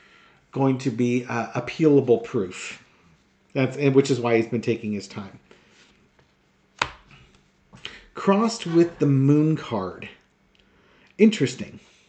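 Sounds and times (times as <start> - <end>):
card tapped onto table: 6.8 - 7.0.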